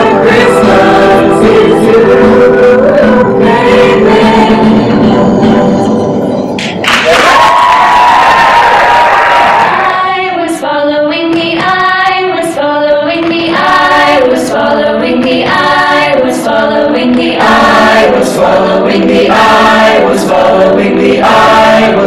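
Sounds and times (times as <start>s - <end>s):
mixed choir singing: 0.0s - 5.7s, 9.2s - 22.0s.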